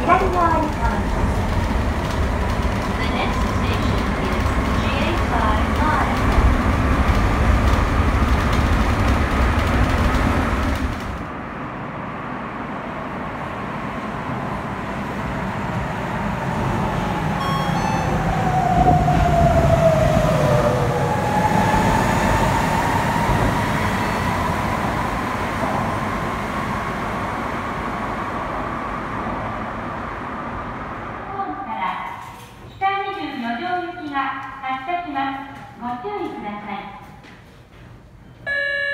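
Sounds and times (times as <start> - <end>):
subway train rumble: 0.0 - 38.9.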